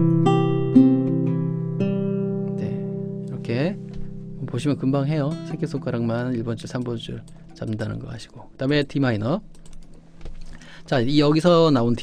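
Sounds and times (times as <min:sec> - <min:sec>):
classical guitar arpeggio: 0:00.0 - 0:07.6.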